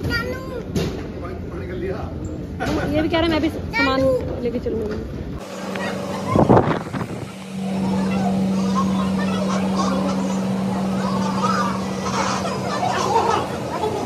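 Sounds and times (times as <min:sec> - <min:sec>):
low mechanical hum: 0:00.0 - 0:14.0
faint voices: 0:05.4 - 0:14.0.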